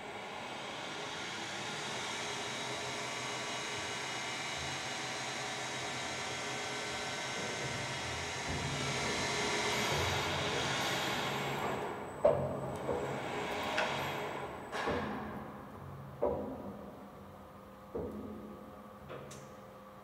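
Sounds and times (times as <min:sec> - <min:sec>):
crane hoist mechanical whine: 0:00.0 - 0:14.8.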